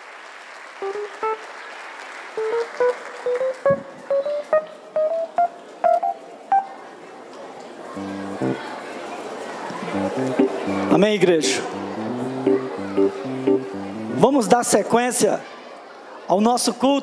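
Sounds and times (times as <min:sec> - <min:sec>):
audience applauding: 0:00.0 - 0:04.7
instrument playing rising notes: 0:09.9 - 0:14.2.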